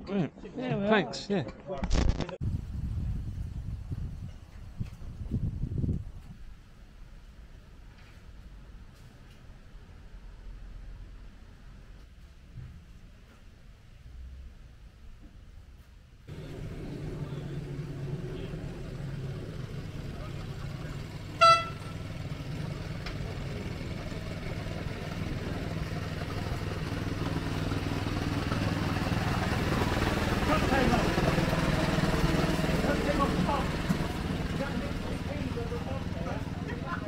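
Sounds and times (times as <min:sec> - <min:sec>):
miniature train rumbling: 0:16.3 - 0:37.0
train horn toot: 0:21.3 - 0:22.3.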